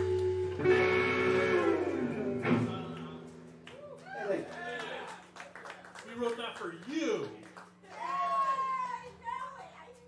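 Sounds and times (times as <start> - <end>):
electric guitar chord ringing: 0.0 - 3.6.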